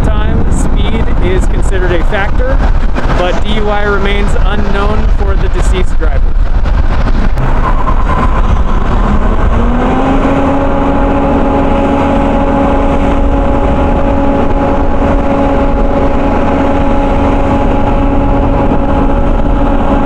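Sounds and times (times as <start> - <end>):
gasoline engine power unit running: 0.0 - 20.0.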